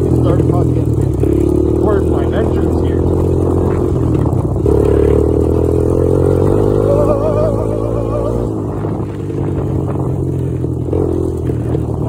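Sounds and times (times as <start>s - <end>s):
quad engine running: 0.0s - 12.0s.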